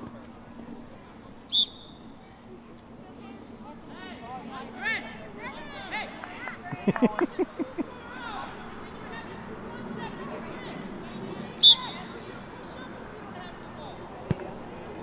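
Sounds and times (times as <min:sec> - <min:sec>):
distant voices: 0:00.0 - 0:15.0
referee's whistle blast: 0:01.5 - 0:02.0, 0:11.6 - 0:12.1
short calls: 0:01.5 - 0:02.2, 0:11.6 - 0:12.3.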